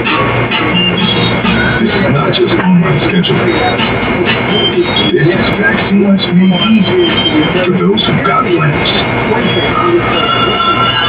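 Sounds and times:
television advert audio: 0.0 - 11.0.

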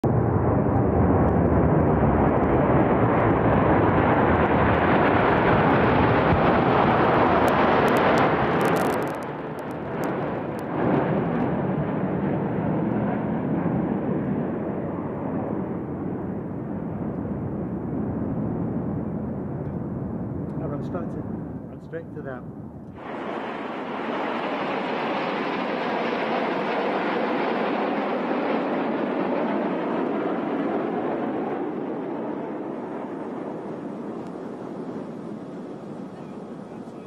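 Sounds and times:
aircraft engines roaring: 0.0 - 37.0.

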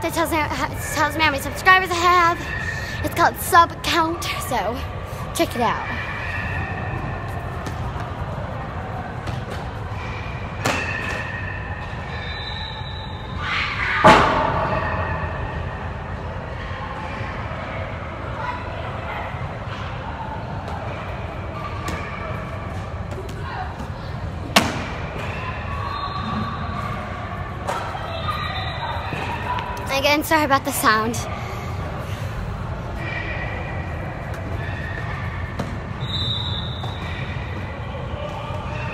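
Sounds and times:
sports hall din: 0.0 - 38.9.

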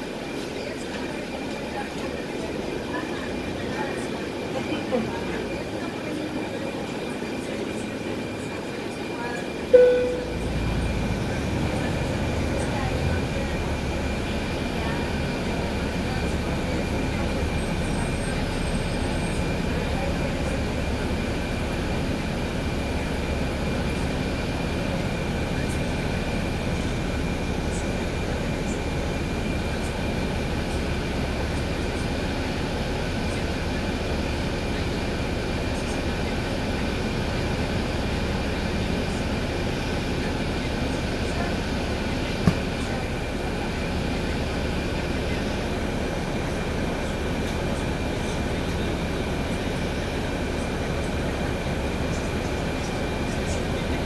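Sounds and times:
bus engine rumble: 0.0 - 54.0
high whine: 9.8 - 11.5
sharp knock: 42.5 - 42.7.

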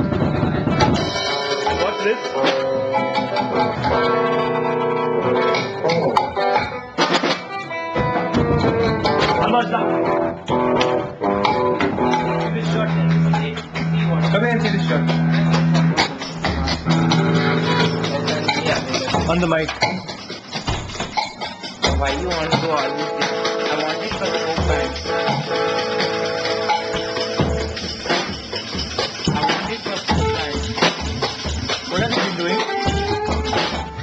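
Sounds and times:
drum and percussion strokes: 0.0 - 34.0
folk band playing: 0.0 - 34.0
plucked string instrument: 0.0 - 34.0.

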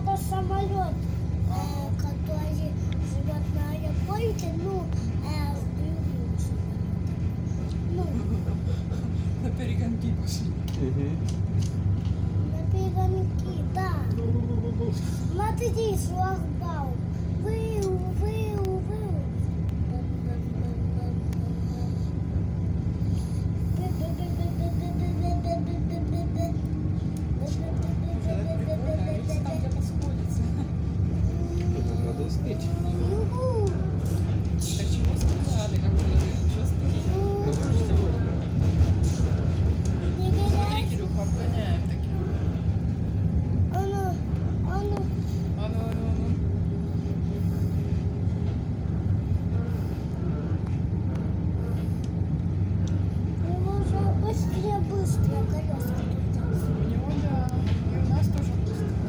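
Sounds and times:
child's voice: 0.0 - 8.8, 12.0 - 46.3, 53.0 - 59.0
electric train rumbling: 0.0 - 59.0.

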